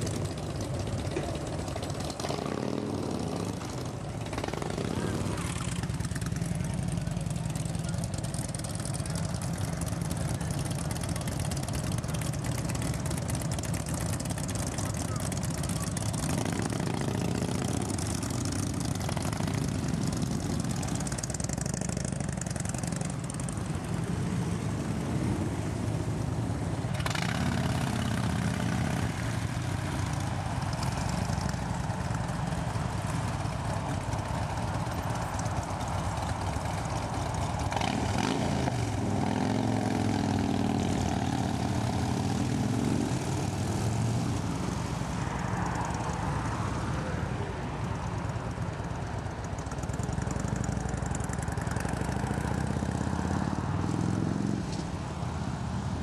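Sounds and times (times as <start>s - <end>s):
motorcycle engines rumbling: 0.0s - 56.0s.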